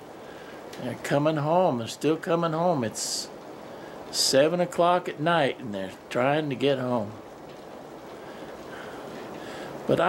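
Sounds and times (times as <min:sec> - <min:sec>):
heavy rain falling: 0:00.0 - 0:10.0.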